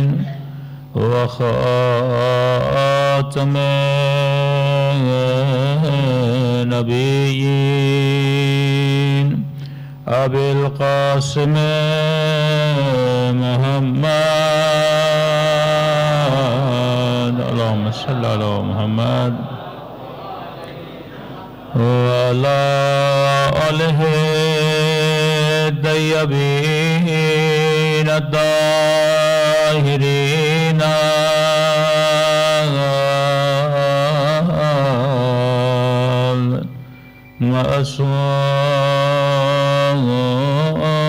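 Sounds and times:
man chanting into a microphone: 0.0s - 19.6s, 20.4s - 36.8s, 37.4s - 41.0s
steady low hum: 0.0s - 41.0s.

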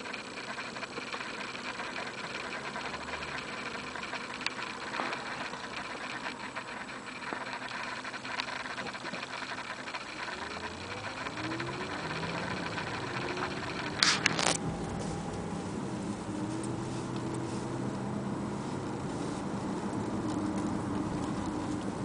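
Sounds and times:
car engine heard from cabin: 0.0s - 22.0s.

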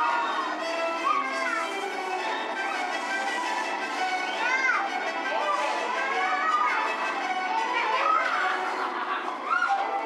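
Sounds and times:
high voices shouting: 0.0s - 2.7s, 4.2s - 10.0s.

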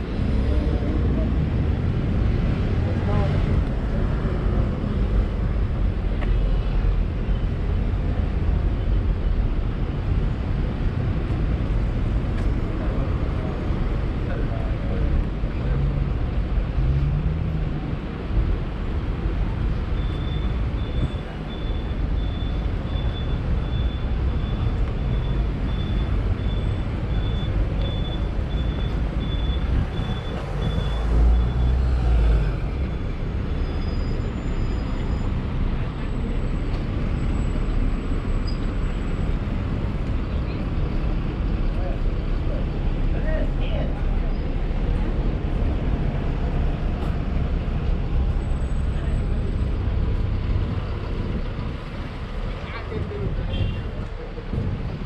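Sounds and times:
people's voices: 0.0s - 5.2s, 34.7s - 55.0s
traffic rumble: 0.0s - 55.0s.

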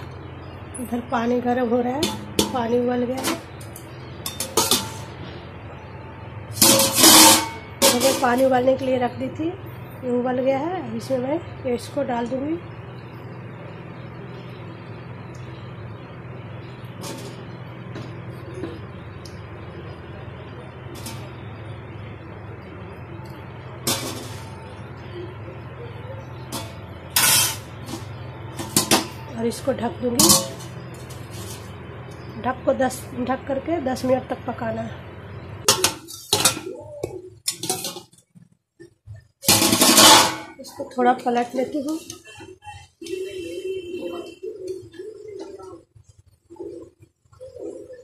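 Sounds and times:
metal lid scraping off pot: 26.6s - 27.7s.

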